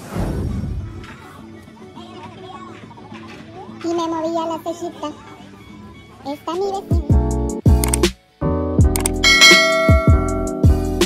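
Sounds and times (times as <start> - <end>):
background music with kick drum: 6.9 - 11.0
quick click: 9.0 - 9.2
notification bell ding: 9.2 - 10.6.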